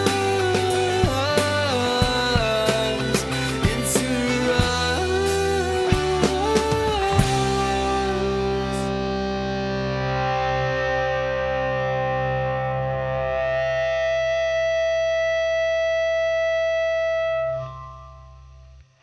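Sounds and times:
bass guitar: 0:00.0 - 0:19.0
distorted electric guitar chord: 0:00.0 - 0:19.0.

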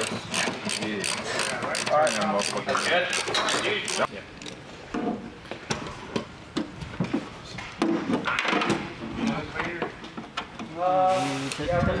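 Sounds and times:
ratchet wrench clicking: 0:00.0 - 0:04.1
hand tools clicking and knocking: 0:00.0 - 0:04.6.

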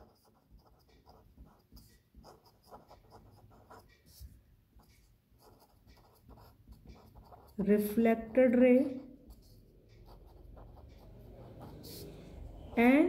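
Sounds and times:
pen writing on paper: 0:00.0 - 0:13.0.

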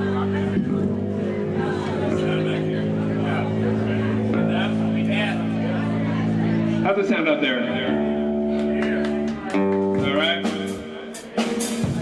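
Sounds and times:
amplifiers droning low notes: 0:00.0 - 0:12.0
crowd chatter: 0:00.0 - 0:12.0.

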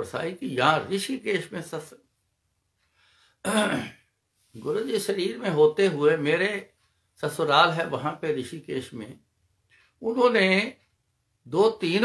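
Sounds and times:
man talking: 0:00.0 - 0:02.1, 0:04.5 - 0:09.2, 0:10.0 - 0:10.8, 0:11.4 - 0:12.0
man clearing his throat: 0:03.4 - 0:04.1.

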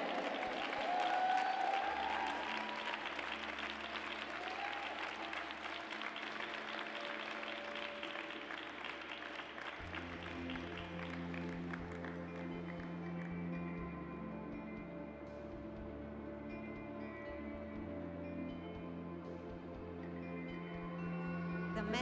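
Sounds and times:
audience applauding: 0:00.0 - 0:12.9.

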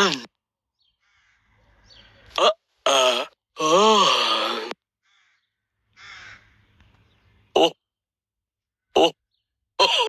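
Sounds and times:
breathy falling cartoon voice: 0:02.4 - 0:04.8.

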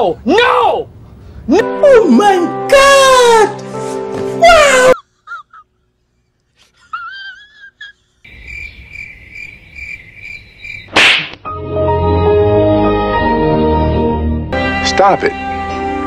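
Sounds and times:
sharp smack: 0:10.9 - 0:11.5
music with sustained chords: 0:11.5 - 0:16.0.

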